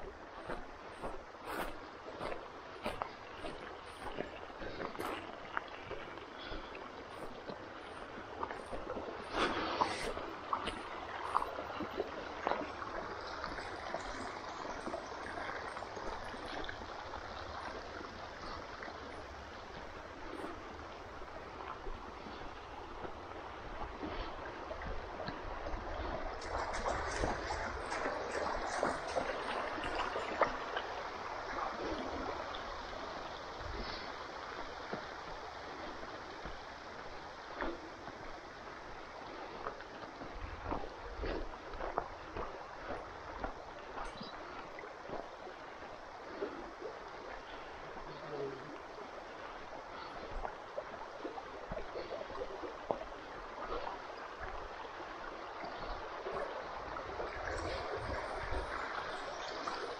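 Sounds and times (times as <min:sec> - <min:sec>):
creek water rushing: 0:00.0 - 0:59.9.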